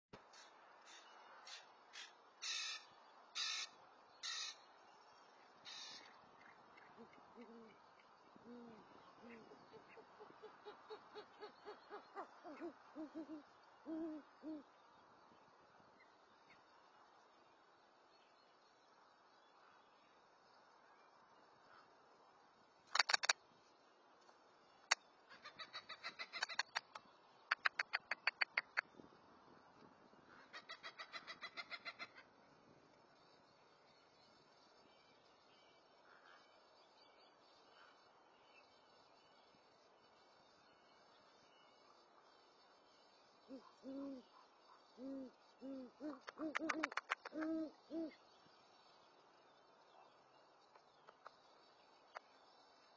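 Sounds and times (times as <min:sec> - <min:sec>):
owl hooting: 0:00.9 - 0:04.6, 0:05.7 - 0:06.1, 0:06.9 - 0:14.7, 0:30.5 - 0:32.2, 0:43.4 - 0:48.2
bird rapid chattering call: 0:22.9 - 0:23.4, 0:24.9 - 0:28.9, 0:46.1 - 0:47.5.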